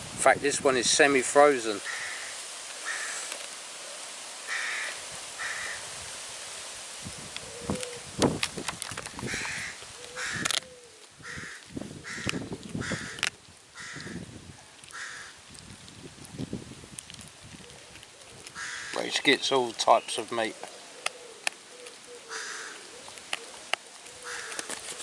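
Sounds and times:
bird harsh calls: 1.8 - 3.3, 4.5 - 5.9, 9.2 - 13.2, 18.5 - 24.7
dog crunching frozen bone: 8.3 - 9.6, 12.2 - 13.4.

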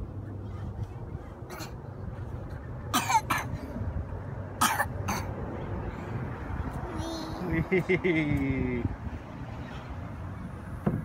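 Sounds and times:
steady low rumble: 0.0 - 11.0
person coughing: 3.0 - 3.5, 4.6 - 5.3.

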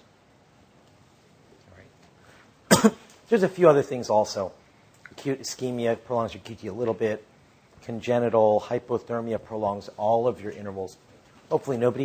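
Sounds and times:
man coughing: 2.7 - 3.1.

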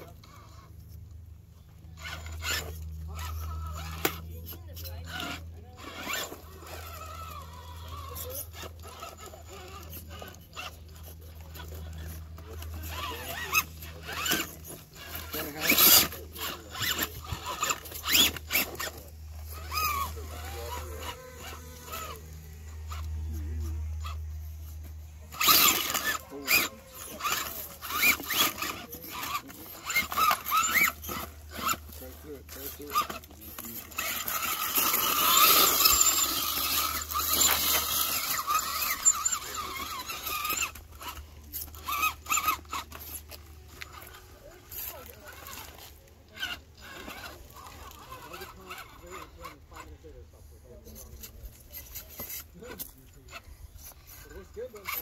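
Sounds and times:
rc car motor whine: 0.0 - 55.0.

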